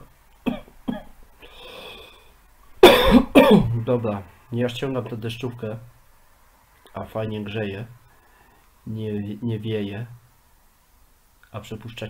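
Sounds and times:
faint hiss: 0.0 - 12.0
man coughing loudly: 2.8 - 3.8.

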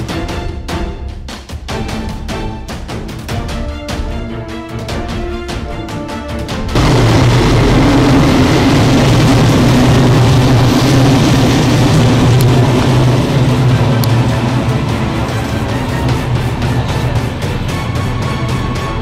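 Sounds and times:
passenger train passing: 6.6 - 19.0.

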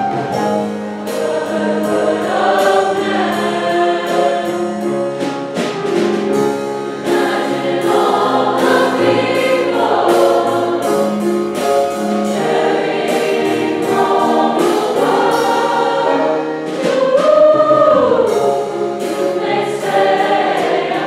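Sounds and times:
mixed choir singing chords: 1.0 - 5.0, 6.9 - 21.0.

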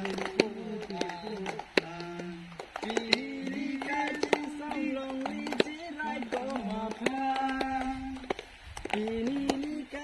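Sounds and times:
person singing: 0.0 - 10.0
sharp claps: 0.0 - 10.0.

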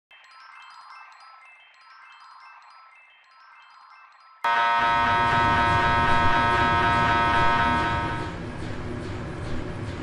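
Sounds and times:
mri scanner pulsing buzz: 4.5 - 8.5.

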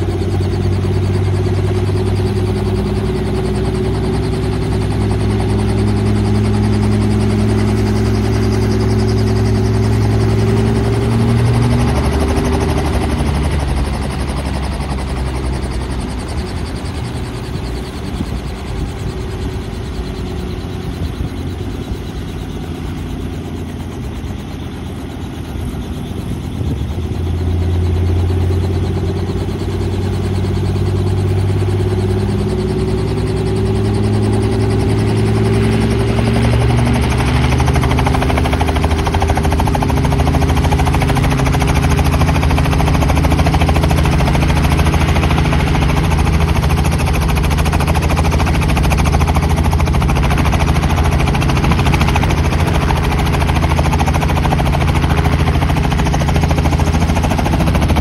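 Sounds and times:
helicopter engine and rotor: 0.0 - 58.0.

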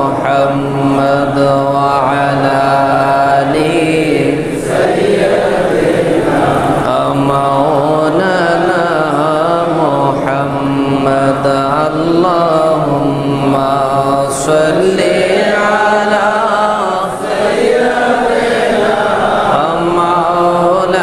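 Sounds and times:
person chanting over a microphone: 0.0 - 21.0.

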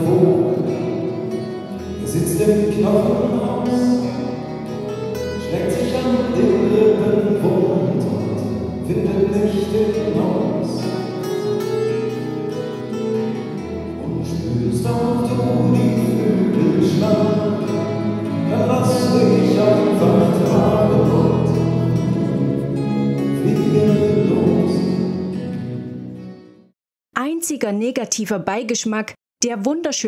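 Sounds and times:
person singing: 0.0 - 11.3, 12.6 - 25.3
strummed acoustic guitars: 0.0 - 26.6
bass: 0.0 - 26.7.

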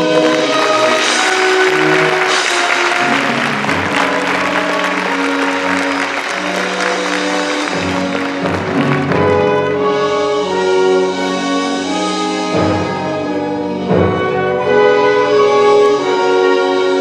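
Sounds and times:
audience applause: 0.0 - 9.8
theatre orchestra playing: 0.0 - 17.0.

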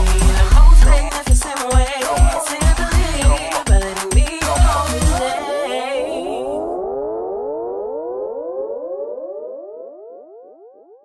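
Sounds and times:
synthesizer tone gliding upward: 6.0 - 11.0.

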